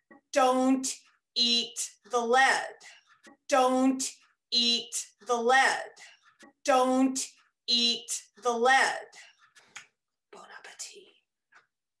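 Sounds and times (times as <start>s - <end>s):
woman whispering: 10.3s - 11.2s.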